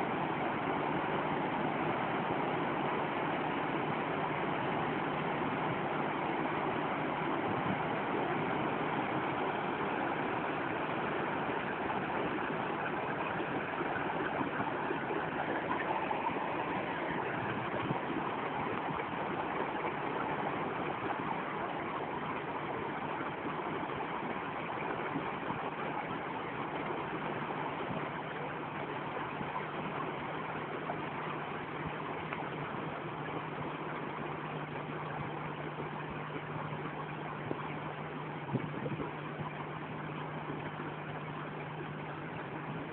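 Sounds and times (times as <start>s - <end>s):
idling boat engine hum: 0.0s - 42.9s
water rushing through lock gate: 0.0s - 42.9s.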